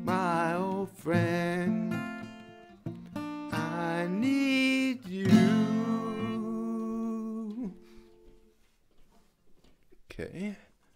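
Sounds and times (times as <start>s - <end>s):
acoustic guitar notes ringing: 0.0s - 8.3s.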